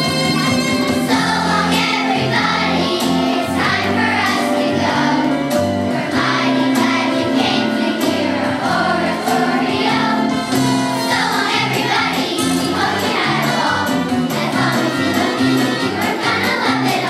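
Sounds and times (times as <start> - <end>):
instrumental accompaniment with beat: 0.0 - 17.0
children's choir singing: 1.0 - 17.0.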